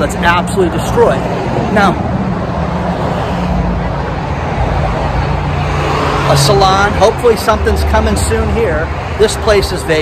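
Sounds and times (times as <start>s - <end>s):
cars driving past: 0.0s - 10.0s.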